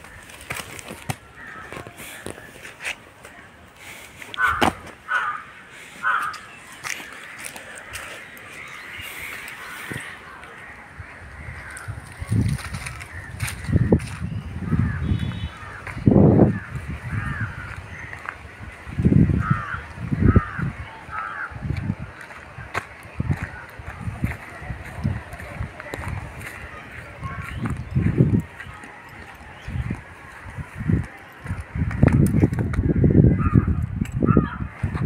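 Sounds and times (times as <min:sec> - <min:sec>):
crow cawing: 0:01.3 - 0:02.4, 0:04.4 - 0:10.4, 0:11.4 - 0:12.0, 0:13.0 - 0:13.9, 0:14.7 - 0:18.4, 0:19.3 - 0:21.6, 0:33.0 - 0:34.7.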